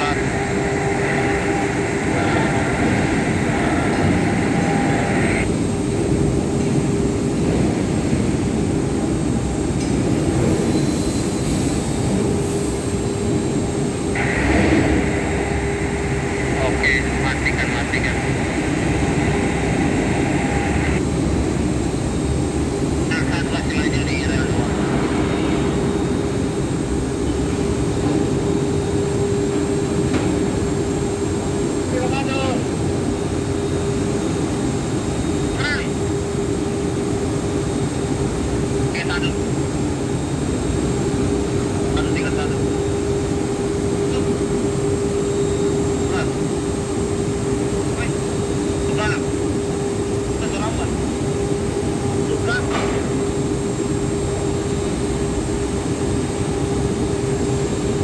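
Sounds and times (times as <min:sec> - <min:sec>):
industrial machinery rumble: 0:00.0 - 0:58.0.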